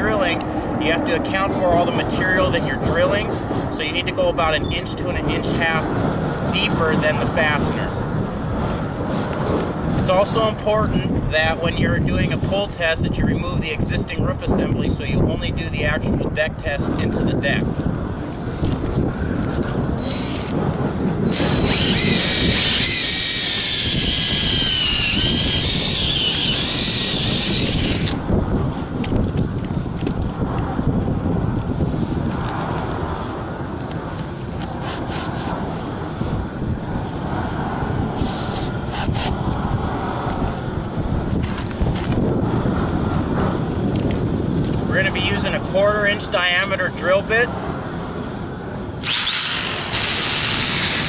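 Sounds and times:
wind buffeting microphone: 0.0 - 51.0
electric drill whine: 20.0 - 20.6, 21.2 - 28.2, 49.0 - 51.0.

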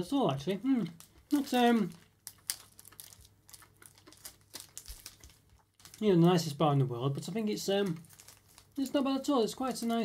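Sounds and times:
person chewing crunchy chocolate: 0.9 - 6.0, 8.0 - 8.8.

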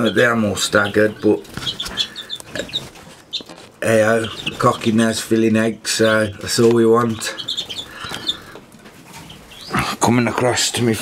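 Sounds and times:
finches chirping: 0.0 - 5.3, 6.0 - 9.9.

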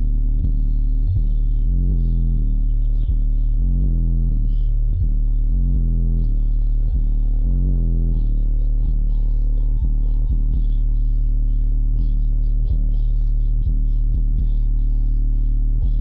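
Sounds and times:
loud bass-heavy music: 0.0 - 16.0.

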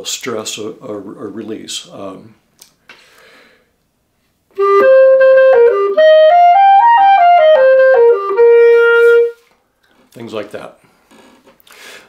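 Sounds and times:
clarinet playing: 4.6 - 9.5.

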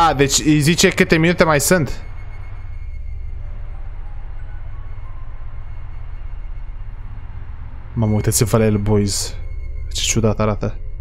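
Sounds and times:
dark ambient music drone: 0.0 - 11.0.

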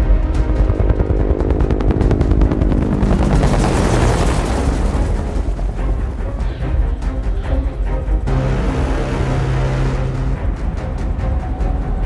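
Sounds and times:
sustained low tones: 0.0 - 12.0
rapid dense percussive hits: 0.1 - 6.5.

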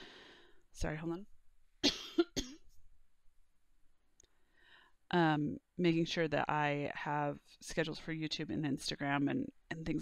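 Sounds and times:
woman coughing: 1.8 - 2.7.

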